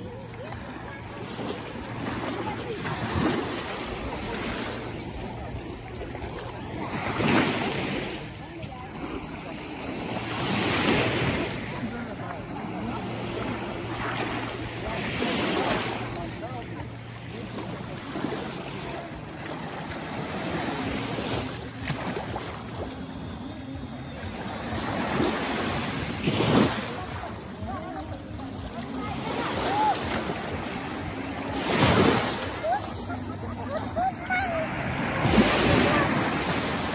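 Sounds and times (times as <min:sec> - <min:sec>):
small sea waves splashing: 0:00.0 - 0:36.9.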